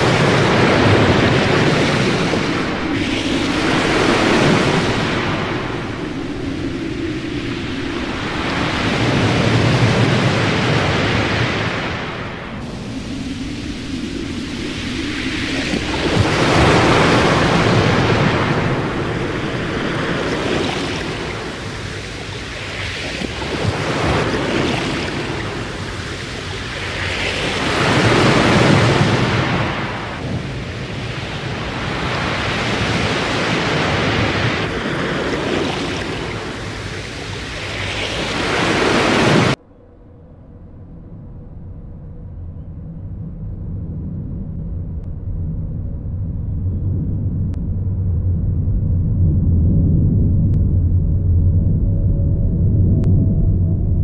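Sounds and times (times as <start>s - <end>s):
low rumble: 0.0s - 29.6s, 39.2s - 54.0s
loud rushing storm noise: 0.0s - 54.0s.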